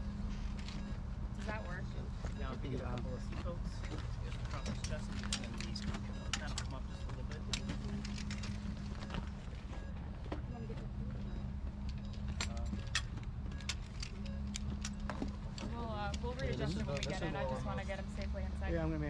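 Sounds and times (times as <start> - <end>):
buckles and clips clinking: 3.4 - 9.9, 11.8 - 17.3.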